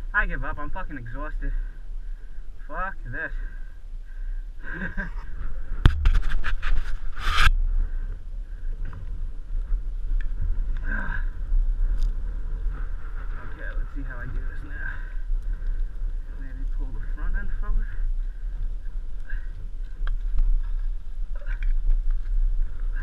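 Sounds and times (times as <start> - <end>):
steady low rumble: 0.0 - 23.0
man laughing: 4.6 - 5.4
dirt bike scraping ground: 5.9 - 7.5.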